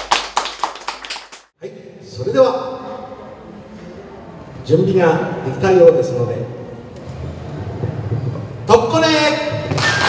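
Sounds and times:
people clapping: 0:00.0 - 0:01.5, 0:09.7 - 0:10.0.

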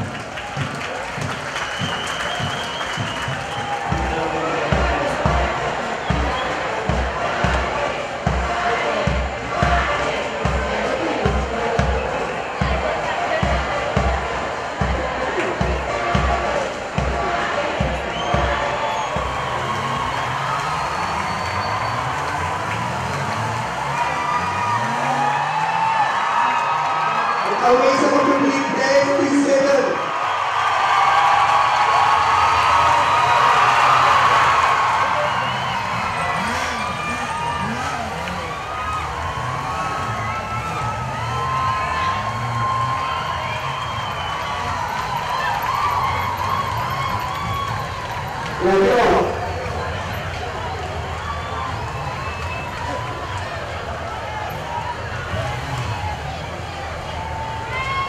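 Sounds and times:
motorcycle engines revving: 0:00.0 - 0:58.0
stadium crowd cheering: 0:00.0 - 0:58.0.

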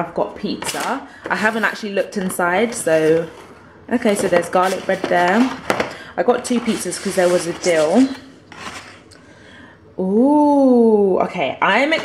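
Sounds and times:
cardboard lid rubbing and scraping: 0:04.2 - 0:05.6, 0:06.4 - 0:09.0.

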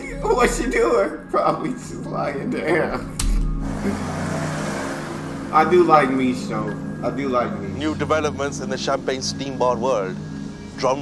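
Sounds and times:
music: 0:00.0 - 0:11.0
steady rushing noise: 0:03.3 - 0:11.0.

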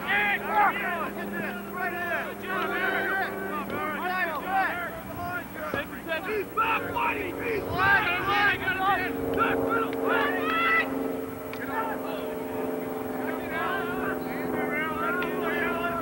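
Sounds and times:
people shouting and calling out: 0:00.0 - 0:16.0
steady low hum: 0:00.0 - 0:16.0.

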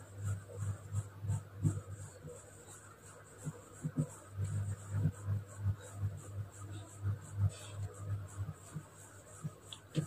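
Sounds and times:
marker pen writing on whiteboard: 0:00.0 - 0:10.0.

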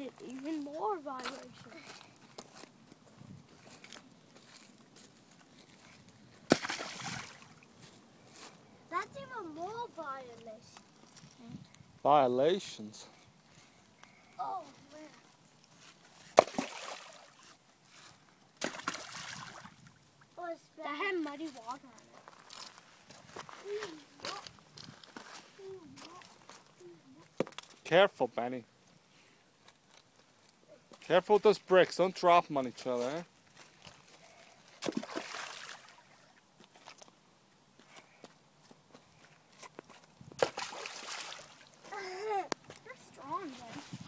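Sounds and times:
footsteps crunching: 0:00.1 - 0:08.6, 0:21.4 - 0:26.7
rocks splashing into river: 0:06.5 - 0:07.6, 0:16.4 - 0:17.4, 0:18.6 - 0:19.8, 0:34.8 - 0:36.0, 0:40.4 - 0:41.7.

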